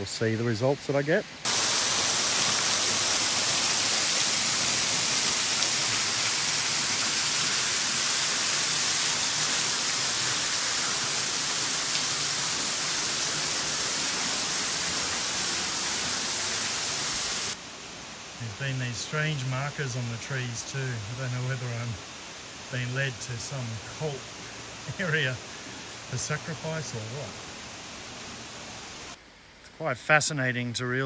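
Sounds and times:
small waterfall splashing on rocks: 1.4 - 17.6.

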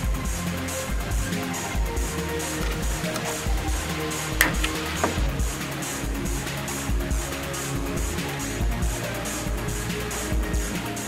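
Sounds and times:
background music with low beat: 0.0 - 11.0
sharp click: 4.4 - 5.2.

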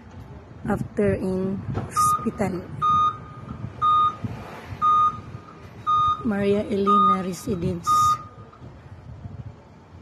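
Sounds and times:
short electronic beeps: 1.9 - 4.2, 4.8 - 8.4.

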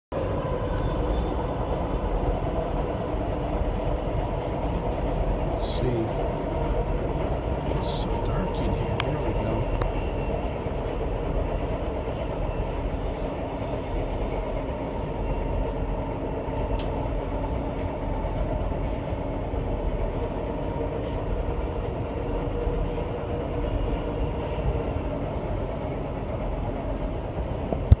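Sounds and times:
steady whine: 0.1 - 28.0
train wheels on rails: 0.1 - 28.0.

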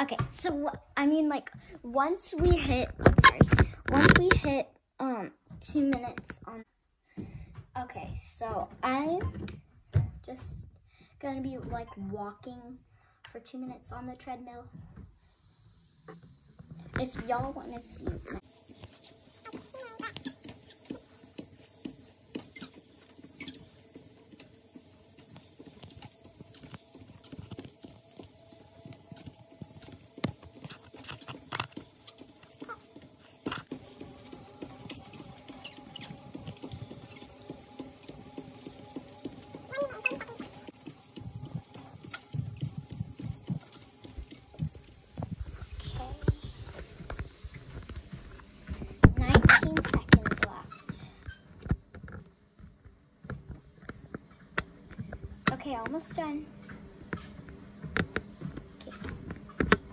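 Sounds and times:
footsteps on treadmill belt: 5.4 - 12.6, 14.0 - 59.9
steady hum: 13.9 - 59.9.

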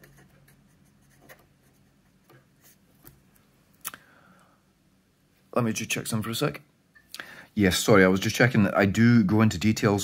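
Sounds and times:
marker pen writing on paper: 0.0 - 2.8.

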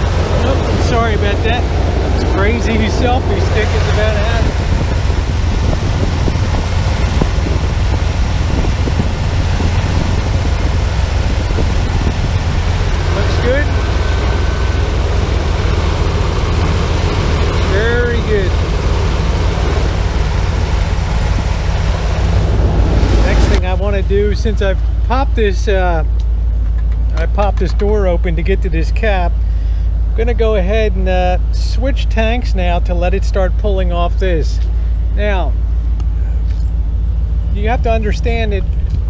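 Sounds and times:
van engine idling: 0.0 - 39.0.

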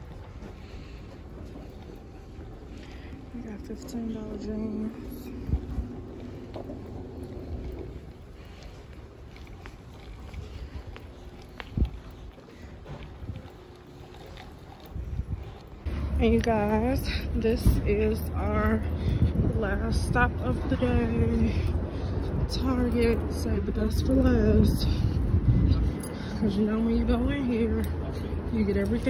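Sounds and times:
low rumble of store background: 0.0 - 29.0
microphone handling rumble: 14.9 - 28.7.

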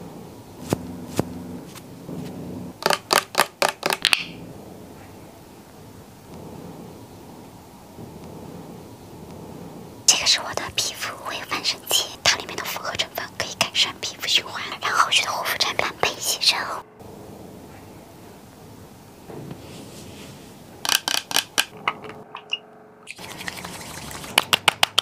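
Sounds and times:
faint background hum: 0.0 - 25.0
woman whispering: 10.1 - 16.8.

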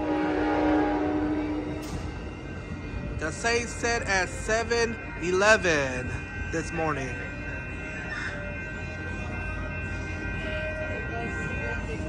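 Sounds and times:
crossing warning bells ringing: 0.0 - 12.0.

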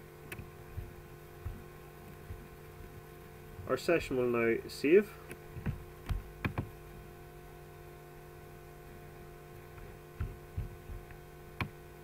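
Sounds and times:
electrical hum: 0.0 - 12.0
soft low thumps: 0.4 - 3.7, 5.5 - 6.8, 9.8 - 11.7.

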